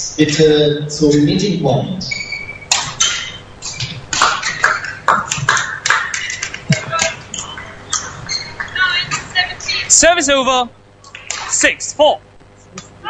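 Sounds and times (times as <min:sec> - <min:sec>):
racket striking shuttlecock: 0:02.7 - 0:05.0
shoes squeaking and stamping: 0:06.7 - 0:09.4.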